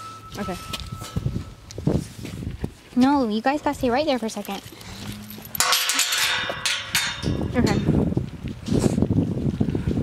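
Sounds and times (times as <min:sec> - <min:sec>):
metal gate clanging: 0:04.5 - 0:08.0.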